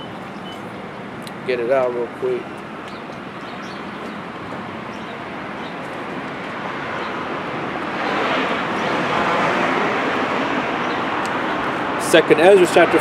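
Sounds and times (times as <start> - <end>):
passing vehicle rushing: 4.7 - 13.0.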